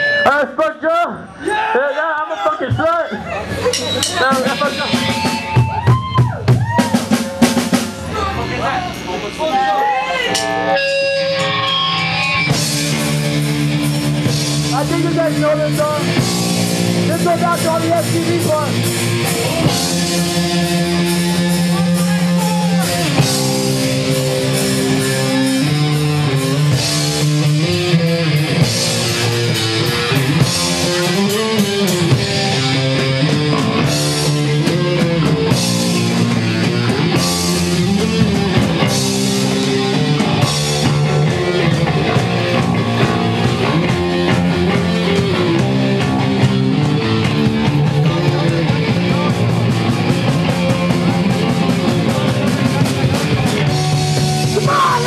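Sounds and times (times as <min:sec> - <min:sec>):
bass guitar: 0:00.0 - 0:55.0
drum kit: 0:02.6 - 0:55.0
electric guitar: 0:03.2 - 0:55.0.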